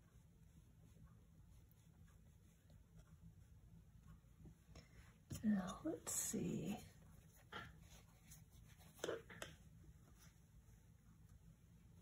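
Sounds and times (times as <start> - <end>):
brush touching paper: 0.0 - 12.0.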